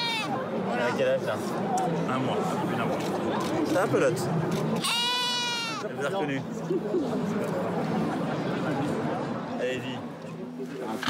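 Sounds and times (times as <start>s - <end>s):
lamb bleating: 4.8s - 5.8s.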